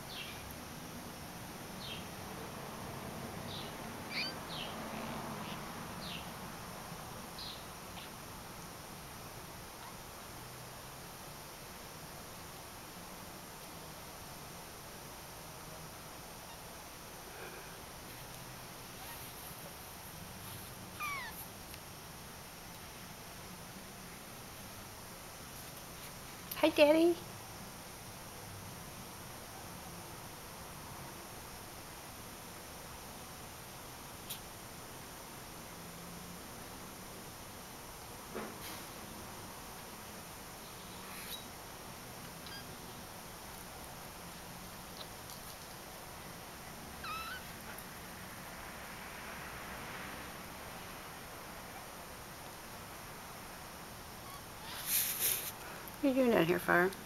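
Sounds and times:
kitten mewing: 21.0 - 21.5, 42.4 - 42.8, 47.0 - 47.6.

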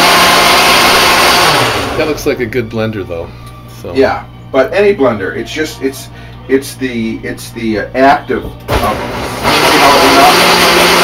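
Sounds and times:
blender motor running: 0.0 - 2.2, 8.7 - 11.0.

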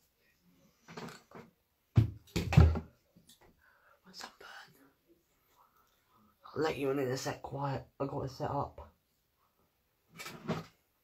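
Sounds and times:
person whispering: 4.0 - 6.5.

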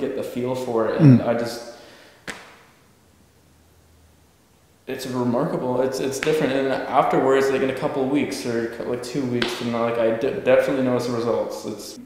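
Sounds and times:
faint low hum: 2.8 - 12.0.

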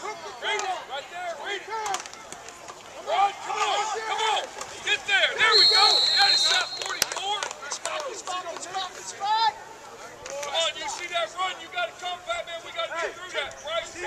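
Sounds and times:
people shouting: 5.4 - 7.1
referee's whistle: 5.4 - 7.2.

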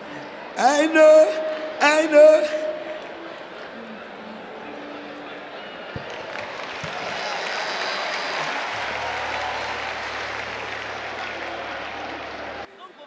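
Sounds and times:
crowd applauding: 5.8 - 12.7.

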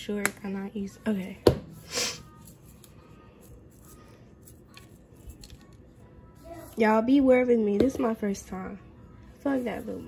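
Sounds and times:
seasoning shakers rustling: 1.8 - 7.1.

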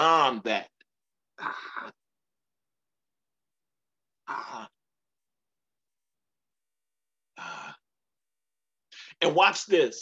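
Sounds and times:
person sighing: 7.4 - 7.8.

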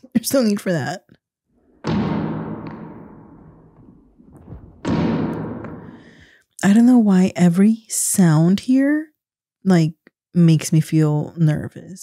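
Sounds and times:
ball thudding against wall: 1.8 - 6.2.

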